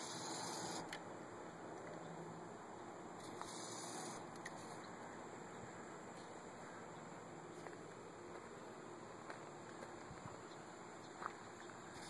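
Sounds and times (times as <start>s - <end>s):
low background hiss: 0.0s - 12.0s.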